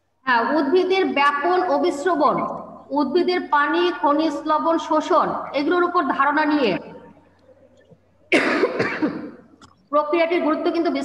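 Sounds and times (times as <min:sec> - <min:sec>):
woman coughing: 0:08.3 - 0:09.8.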